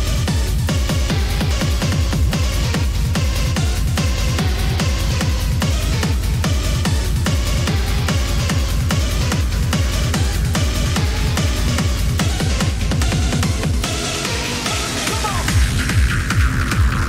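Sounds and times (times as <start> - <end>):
heavy kick drum: 0.0 - 17.0
industrial techno music: 0.0 - 17.0.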